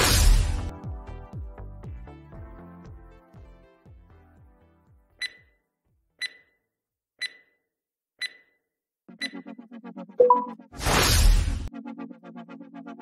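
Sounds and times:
background music: 0.0 - 5.3, 9.1 - 10.8.

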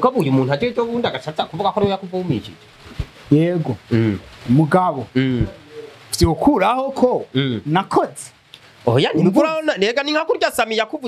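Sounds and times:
man speaking into a microphone: 0.0 - 2.6, 3.3 - 11.0.

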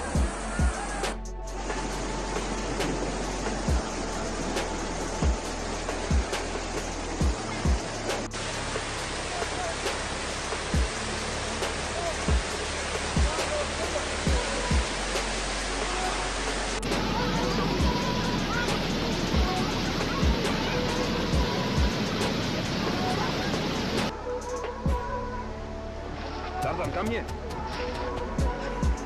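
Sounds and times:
rushing floodwater: 0.0 - 24.2, 26.0 - 29.0
background music with low drone: 0.0 - 29.0.

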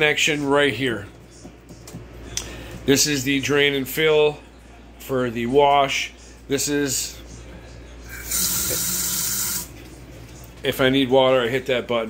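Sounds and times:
tap water running into steel sink: 8.3 - 9.6.

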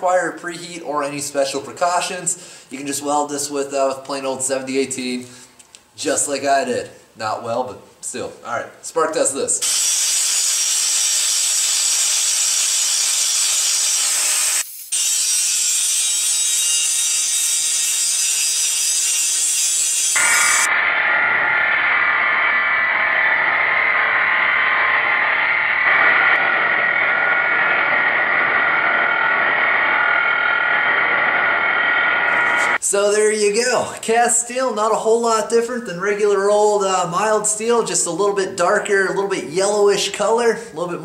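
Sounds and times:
angle grinder grinding steel: 9.6 - 20.7.

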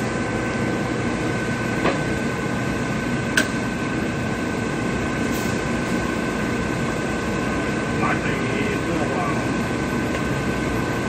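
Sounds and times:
drill machine hum and whine: 0.0 - 11.0.

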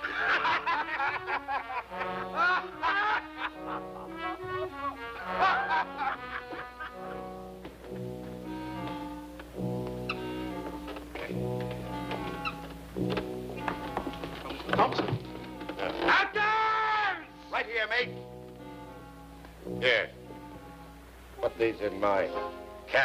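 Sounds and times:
orchestral score with brass: 0.0 - 16.4, 17.0 - 23.0.

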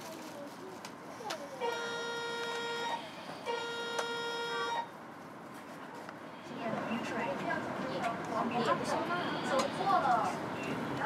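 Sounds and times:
train horn blasts: 1.6 - 4.9.

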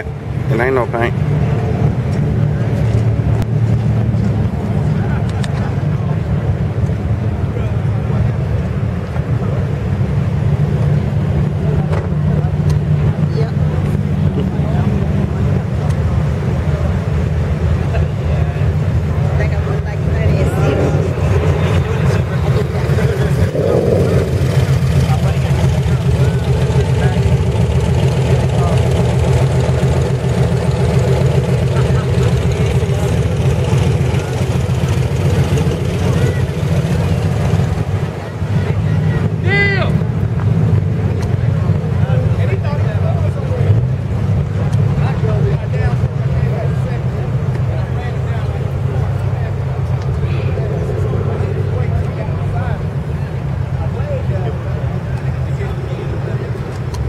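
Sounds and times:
steady low rumble: 0.0 - 57.0
indistinct background voices: 18.6 - 27.2
high call rising and falling: 20.0 - 26.2.

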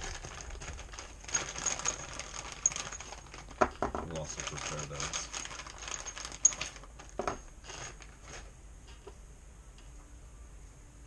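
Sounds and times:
small parts clicking and rattling: 0.0 - 9.0.

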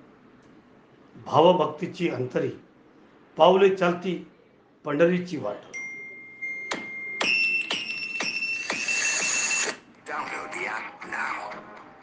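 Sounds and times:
electronic keyboard music: 6.5 - 9.7.

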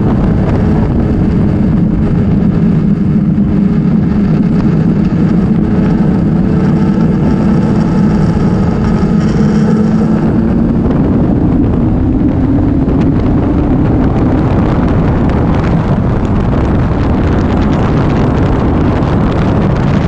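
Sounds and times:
motorcycle engine running: 0.0 - 20.0
wind rush on microphone: 0.0 - 20.0.

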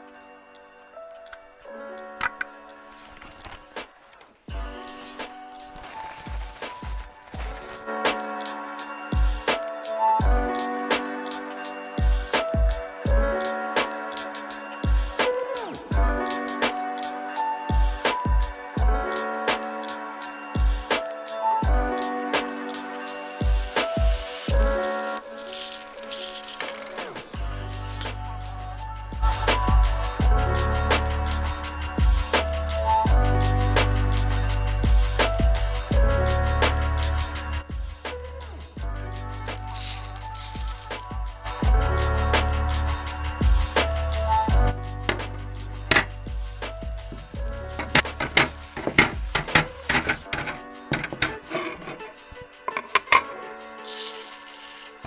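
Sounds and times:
background music: 0.0 - 55.0
small plastic pieces clattering: 5.8 - 7.9, 25.2 - 27.4, 39.4 - 41.1, 53.9 - 55.0.

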